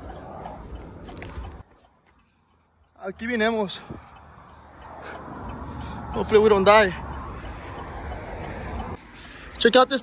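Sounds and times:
tyres rolling on asphalt: 0:00.0 - 0:10.0.

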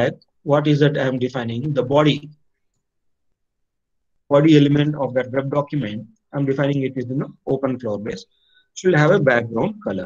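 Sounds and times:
man speaking: 0:00.0 - 0:02.4, 0:04.3 - 0:10.0.

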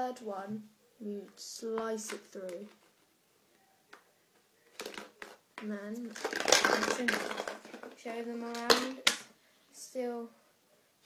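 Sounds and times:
plastic bottle crackling: 0:03.9 - 0:09.3
plastic water bottle clicking: 0:04.8 - 0:05.4, 0:06.1 - 0:09.2.

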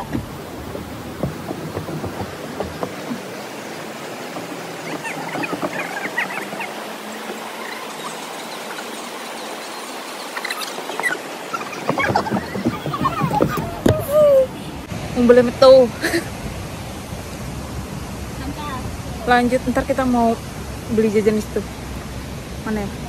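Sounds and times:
stream rushing: 0:00.0 - 0:23.0
voices: 0:01.2 - 0:16.3, 0:18.3 - 0:21.9, 0:22.6 - 0:23.0.

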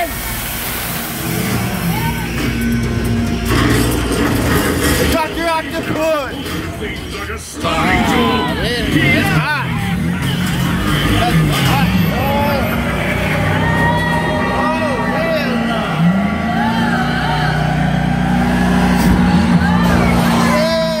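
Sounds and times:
low droning score: 0:00.0 - 0:21.0.

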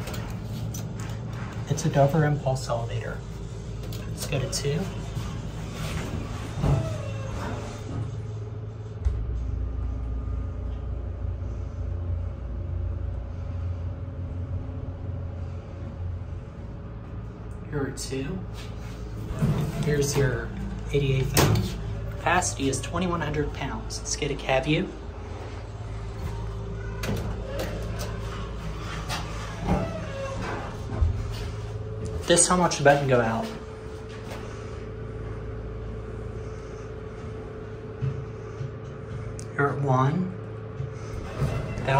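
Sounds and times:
elevator steady low hum: 0:00.0 - 0:41.9.

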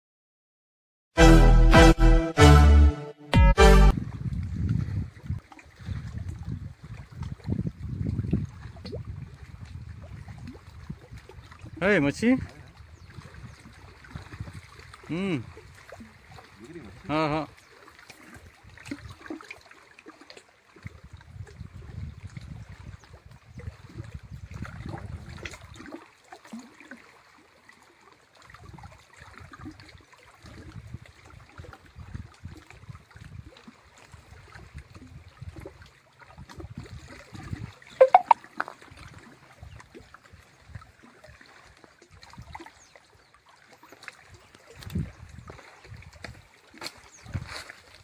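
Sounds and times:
brief loud sound: 0:01.2 - 0:03.9
wind buffeting microphone: 0:03.9 - 0:11.8, 0:12.4 - 0:15.8, 0:20.8 - 0:25.5, 0:44.8 - 0:46.4, 0:47.1 - 0:47.7
small waves lapping: 0:04.8 - 0:48.0.

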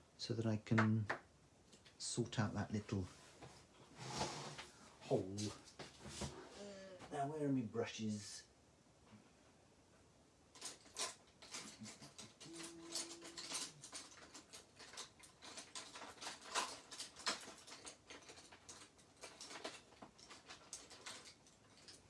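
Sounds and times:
rummaging through craft supplies: 0:10.5 - 0:22.0.

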